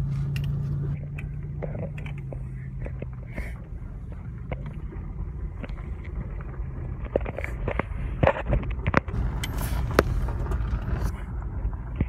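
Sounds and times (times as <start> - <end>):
engine and road drone: 0.0 - 12.0
light clicks and rattles: 0.2 - 11.0.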